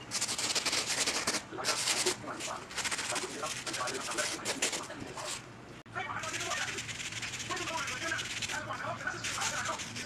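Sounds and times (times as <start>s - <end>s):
bristle brush scrubbing a sneaker: 0.1s - 5.4s, 6.2s - 10.0s.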